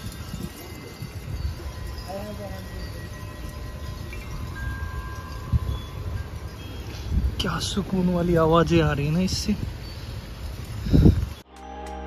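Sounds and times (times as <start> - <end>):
wind chimes ringing: 0.0 - 11.8.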